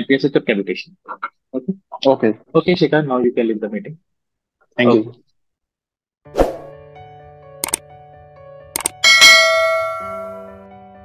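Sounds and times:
notification bell chime: 9.0 - 10.6.

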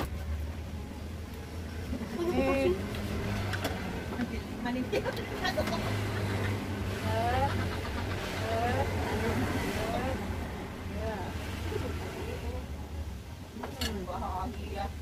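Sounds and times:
voices: 1.3 - 15.0.

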